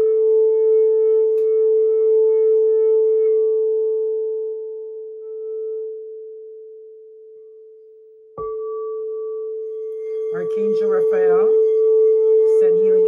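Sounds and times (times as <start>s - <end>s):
crystal singing bowl tone: 0.0s - 13.0s.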